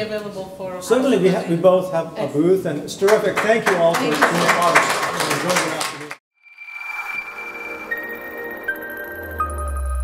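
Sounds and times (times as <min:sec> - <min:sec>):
electronic ambient music: 0:06.4 - 0:10.0
high synth tone: 0:06.4 - 0:10.0.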